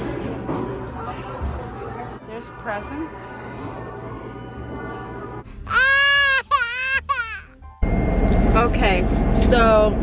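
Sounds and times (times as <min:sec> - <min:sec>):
toddler crying: 0:05.7 - 0:07.6.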